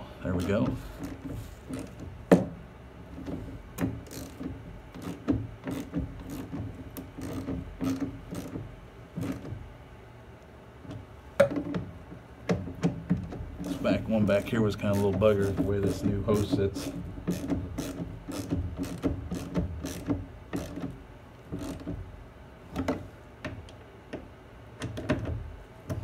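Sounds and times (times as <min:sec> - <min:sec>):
faint steady hum: 0:00.0 - 0:26.0
plastic parts clicking and knocking: 0:22.7 - 0:26.0.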